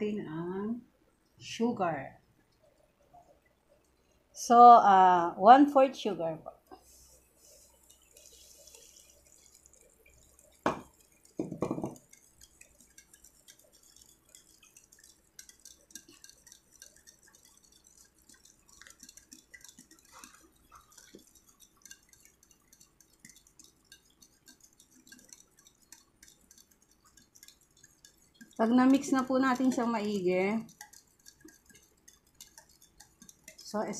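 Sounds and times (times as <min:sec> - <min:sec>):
whisk clinking against bowl: 0:07.8 - 0:33.9.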